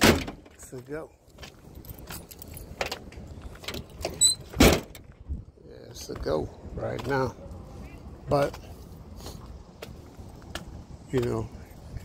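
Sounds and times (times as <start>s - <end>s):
footsteps on asphalt: 0.5s - 4.0s, 5.0s - 12.0s.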